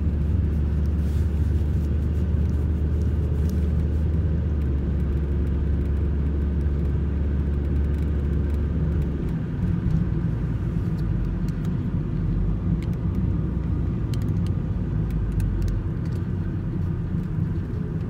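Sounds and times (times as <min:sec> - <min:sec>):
car interior road noise: 0:00.0 - 0:18.0.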